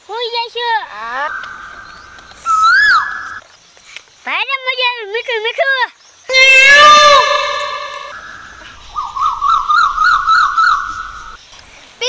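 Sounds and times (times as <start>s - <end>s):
high-pitched squeal: 6.3s - 8.3s
steady high tone: 6.3s - 8.3s.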